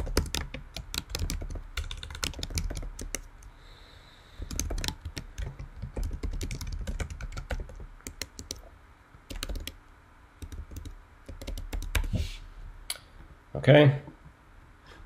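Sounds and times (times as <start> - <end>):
computer keyboard typing: 0.0 - 3.5, 4.4 - 8.7, 9.3 - 9.8, 10.4 - 12.1.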